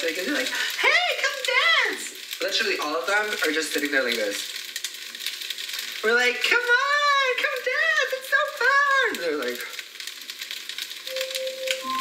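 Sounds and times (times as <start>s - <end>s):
food frying and crackling: 0.0s - 12.0s
steady held notes: 11.1s - 12.0s.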